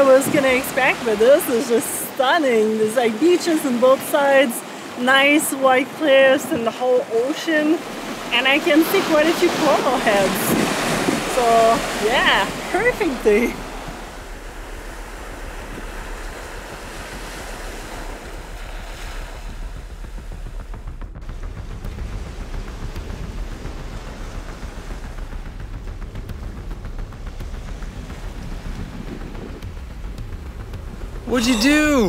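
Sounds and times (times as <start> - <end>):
small waves washing over sand: 0.0 - 20.7, 21.3 - 30.2
wind rumble on microphone: 0.0 - 31.4.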